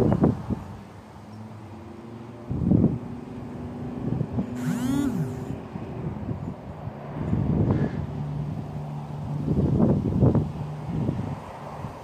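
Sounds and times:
wind rumbling on microphone: 0:00.0 - 0:00.9, 0:02.4 - 0:12.0
rising and falling pitched tone: 0:04.6 - 0:05.6.

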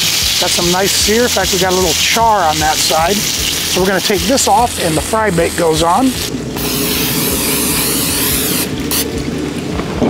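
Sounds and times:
aerosol cooking spray hissing: 0:00.0 - 0:09.1.

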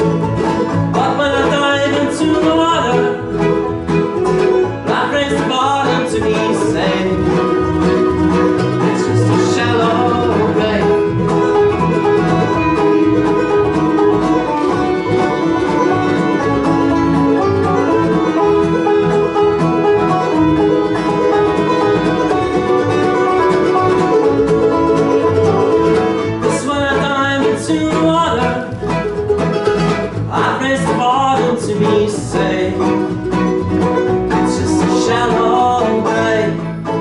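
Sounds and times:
acoustic string band playing: 0:00.0 - 0:37.0.

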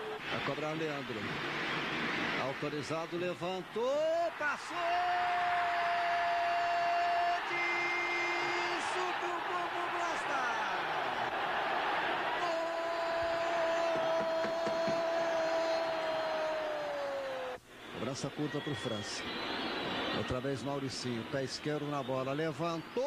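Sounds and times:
stadium crowd cheering: 0:00.0 - 0:23.0.

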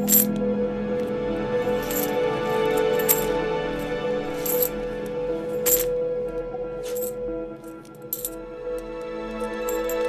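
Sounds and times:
coins clinking as they drop: 0:00.0 - 0:00.4, 0:01.8 - 0:03.4, 0:04.3 - 0:04.8, 0:05.6 - 0:05.9, 0:06.8 - 0:07.2, 0:08.0 - 0:08.4, 0:09.5 - 0:10.0
background music: 0:00.0 - 0:10.0.

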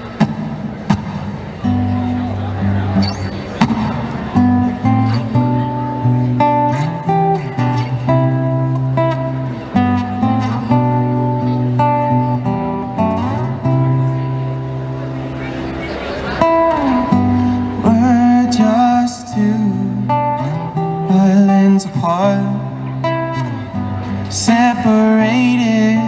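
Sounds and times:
acoustic guitar picking: 0:00.0 - 0:26.0.

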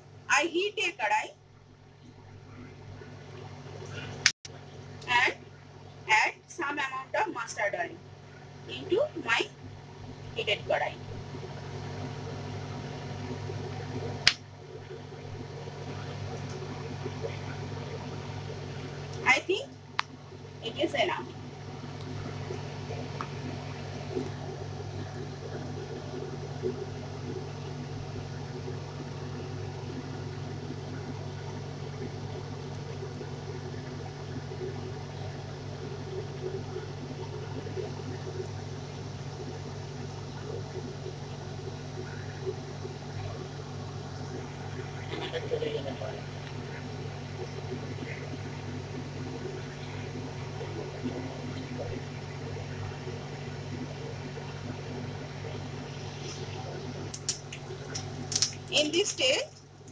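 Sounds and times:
steady low hum with hiss: 0:00.0 - 0:59.9
seeds crackling in hot oil: 0:53.6 - 0:59.9.

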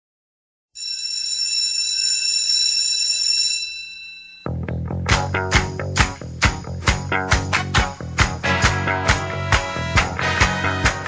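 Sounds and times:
high bell-like ringing tone: 0:00.8 - 0:04.7.

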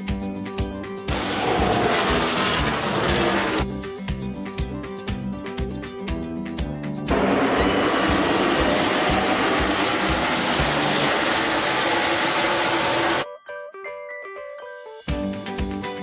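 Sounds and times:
background music with beat: 0:00.0 - 0:16.0.

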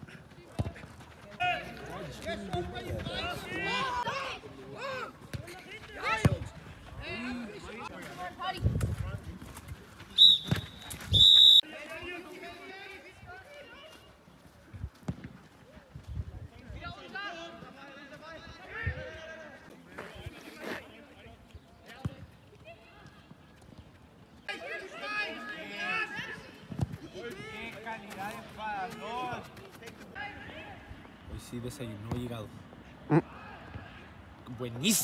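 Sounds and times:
referee's whistle blasts: 0:10.2 - 0:11.6
voices calling: 0:34.6 - 0:35.0.

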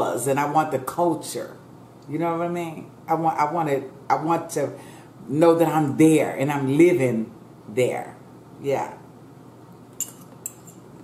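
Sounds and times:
metal fork clinking ceramic bowl: 0:10.0 - 0:10.8.

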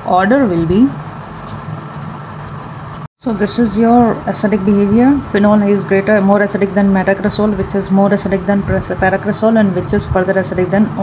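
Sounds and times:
low background hum: 0:00.0 - 0:11.0
marker scratching on paper: 0:01.3 - 0:03.1.

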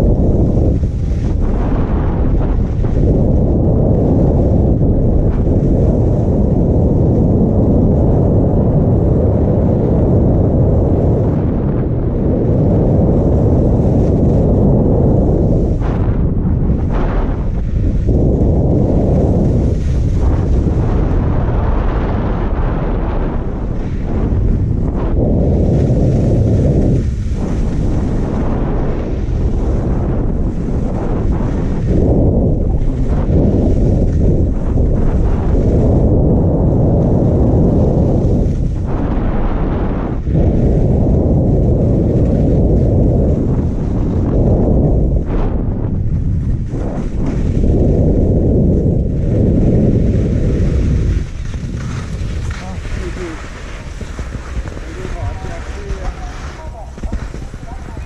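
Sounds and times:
wind buffeting microphone: 0:00.0 - 0:58.0
skis sliding on packed snow: 0:00.1 - 0:03.3, 0:13.2 - 0:14.6, 0:16.8 - 0:22.2, 0:22.8 - 0:36.2, 0:36.9 - 0:44.5, 0:46.3 - 0:58.0.

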